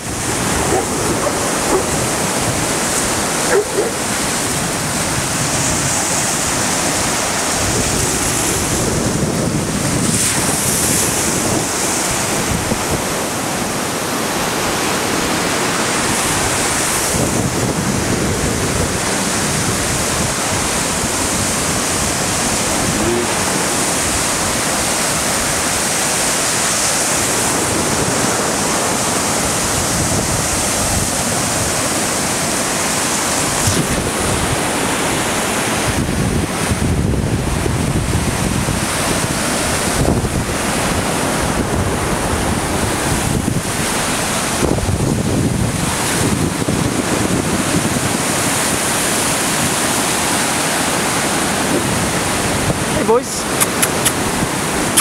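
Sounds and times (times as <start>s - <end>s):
waves washing onto shore: 0.0s - 55.0s
wind buffeting microphone: 0.0s - 55.0s.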